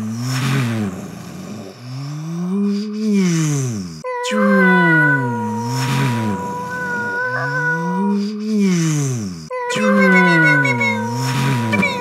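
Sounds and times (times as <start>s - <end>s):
man imitating spaceship by mouth: 2.7s - 12.0s.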